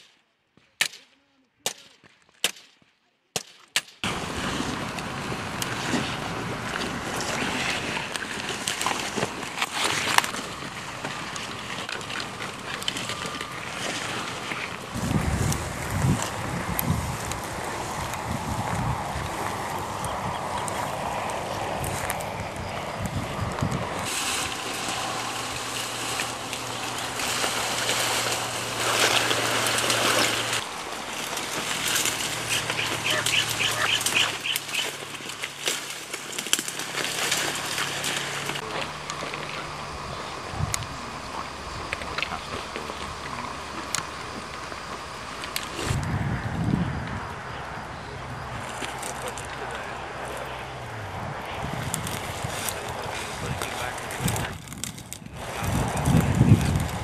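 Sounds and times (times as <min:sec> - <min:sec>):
rustling through grass and brush: 0:04.0 - 0:47.0, 0:48.4 - 0:57.0
low steady hum: 0:04.0 - 0:57.0.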